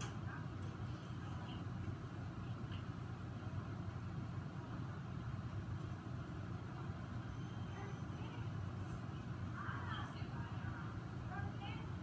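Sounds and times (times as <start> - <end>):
faint indistinct voices: 0.0 - 4.9, 6.4 - 12.0
low room rumble: 0.0 - 12.0.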